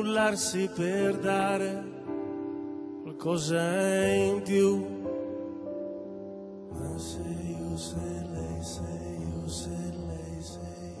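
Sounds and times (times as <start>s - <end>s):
person singing: 0.0s - 6.1s, 6.7s - 11.0s.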